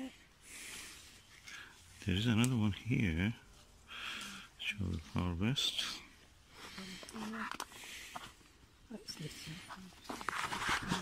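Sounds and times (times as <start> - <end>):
apples clicking and rustling: 6.6 - 11.0.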